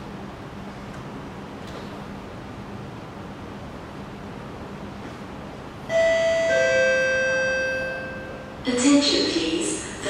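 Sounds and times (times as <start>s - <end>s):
low hum of station noise: 0.0s - 10.0s
two-note descending chime: 5.9s - 8.5s.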